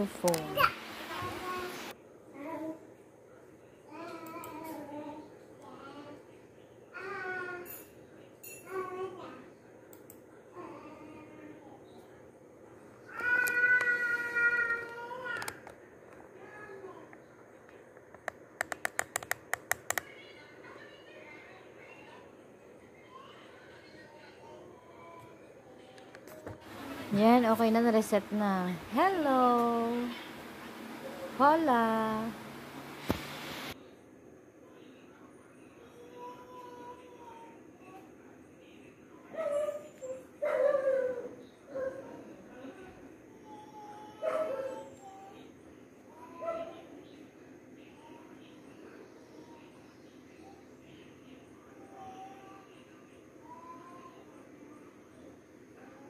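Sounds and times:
sharp clicks: 0:18.2 - 0:20.1.

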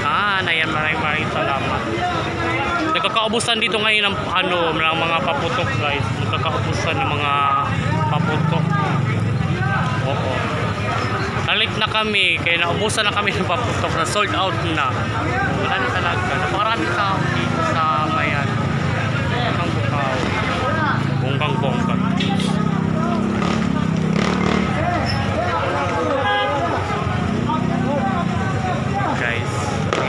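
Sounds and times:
people talking: 0:00.0 - 0:30.0
street traffic noise: 0:00.0 - 0:30.0
vehicle engine: 0:00.0 - 0:30.0.

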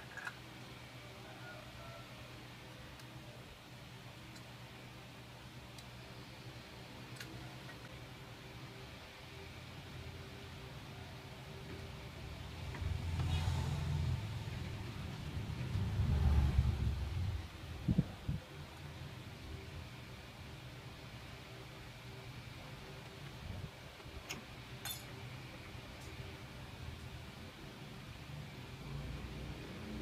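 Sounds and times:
low rumble: 0:12.8 - 0:18.4.

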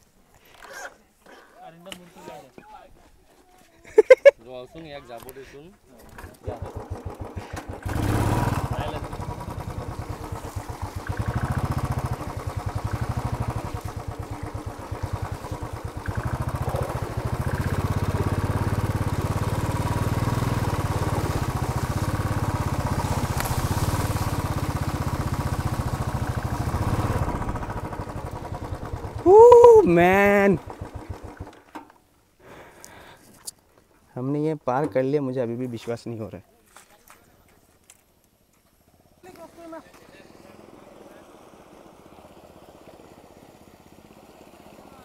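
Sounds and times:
motorcycle engine running: 0:06.4 - 0:31.7, 0:39.2 - 0:45.0
person exclaiming: 0:29.2 - 0:30.6.

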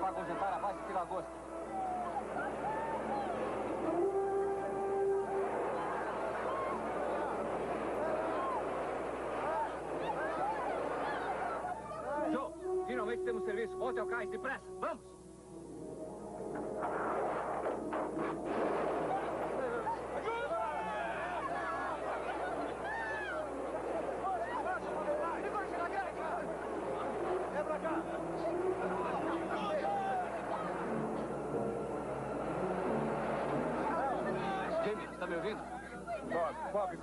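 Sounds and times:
crowd screaming in panic: 0:01.5 - 0:04.1, 0:04.7 - 0:12.2, 0:18.8 - 0:26.6.

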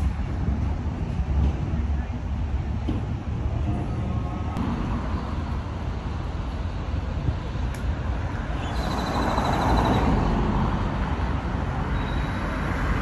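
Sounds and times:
passing cars rumbling: 0:00.0 - 0:13.0.

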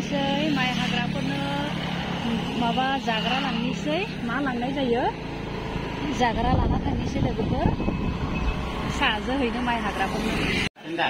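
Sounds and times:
people talking: 0:00.0 - 0:05.2, 0:06.0 - 0:07.8, 0:08.9 - 0:11.0
motorcycle engine running: 0:00.0 - 0:10.7
wind buffeting microphone: 0:06.0 - 0:09.2.

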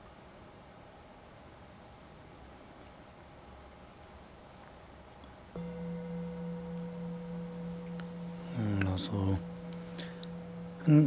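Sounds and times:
metal singing bowl ringing: 0:05.6 - 0:11.0.

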